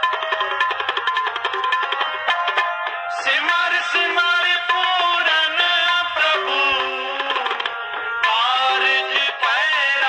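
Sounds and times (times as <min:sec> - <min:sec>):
person singing devotional song: 0:03.1 - 0:10.0.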